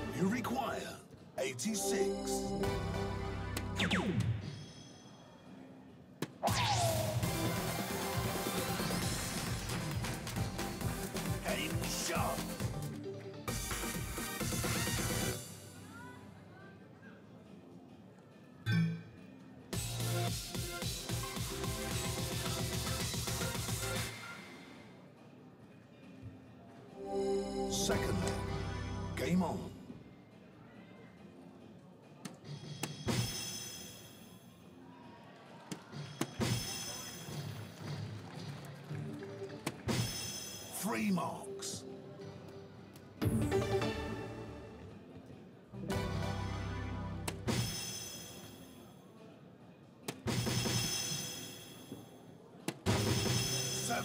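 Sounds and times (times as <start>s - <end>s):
faint background music: 0.0s - 54.0s
electronic music: 1.7s - 4.5s, 6.4s - 15.4s, 19.8s - 24.1s, 27.0s - 29.7s.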